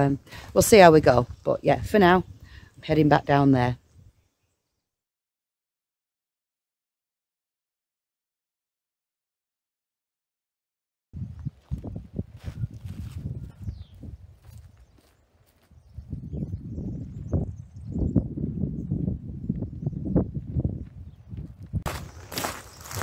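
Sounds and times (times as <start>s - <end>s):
footsteps on dirt and grass: 11.4s - 16.2s, 20.8s - 23.0s.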